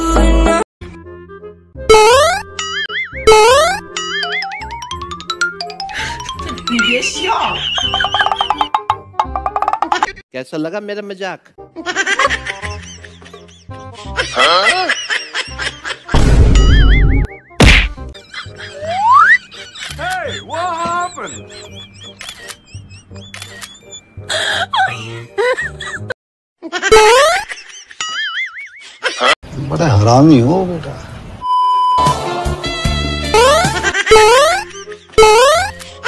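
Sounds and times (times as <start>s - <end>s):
light background music: 1.0s - 9.8s, 10.7s - 16.4s, 17.6s - 26.1s, 32.0s - 36.0s
cartoon boing sound effect: 1.9s - 4.4s, 33.4s - 34.6s
wobbling warbling tone: 1.9s - 5.0s
sharp whack: 16.1s - 16.9s, 17.6s - 18.1s.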